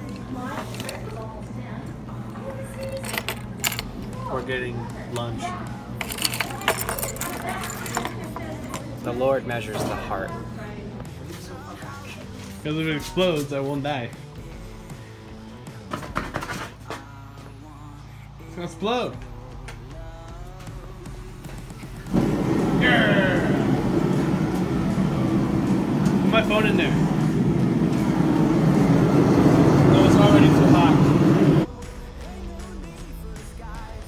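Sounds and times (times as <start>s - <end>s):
gas forge burner roaring: 0.0s - 16.9s, 17.7s - 31.9s
steady low hum: 19.4s - 34.0s.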